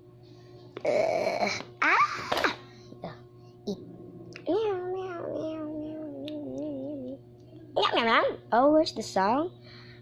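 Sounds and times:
child singing long wavering note: 3.7s - 7.7s.

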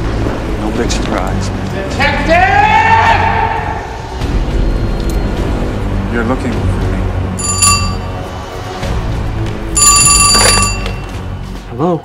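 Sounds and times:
background music: 0.0s - 12.0s
telephone ringing: 7.4s - 8.2s, 9.8s - 11.3s.

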